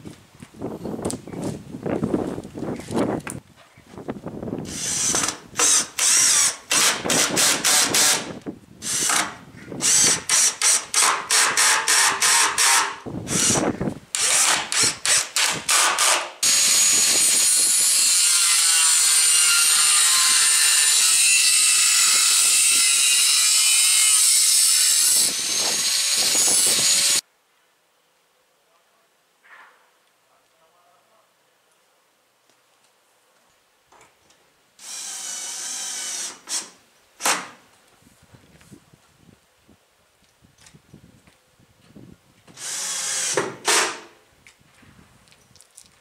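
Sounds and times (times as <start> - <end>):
power drill short bursts: 4.7 - 13.6, 42.6 - 44.0
power tool running steadily: 20.4 - 27.2.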